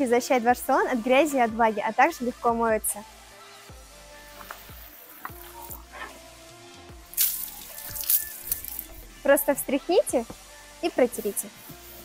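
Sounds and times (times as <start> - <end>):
background music with steady beat: 0.0 - 12.0
water spraying onto floor mat: 7.1 - 9.0.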